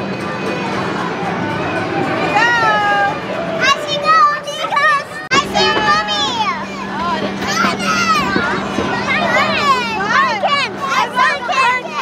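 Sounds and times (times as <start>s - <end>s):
children's excited voices: 0.0s - 12.0s
steady low hum: 5.0s - 11.9s.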